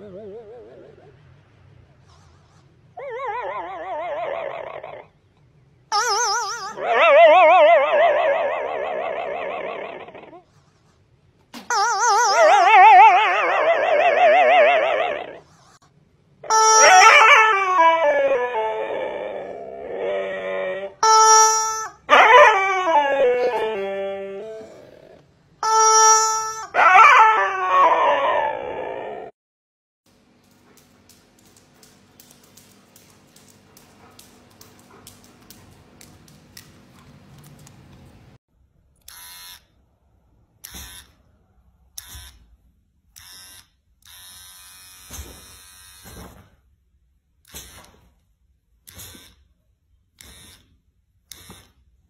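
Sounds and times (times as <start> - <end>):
husky howling: 6.7 - 10.4, 12.4 - 15.4, 16.8 - 21.0, 22.1 - 25.2, 26.7 - 29.4
electric hair clipper buzzing: 39.1 - 39.6, 43.2 - 46.1.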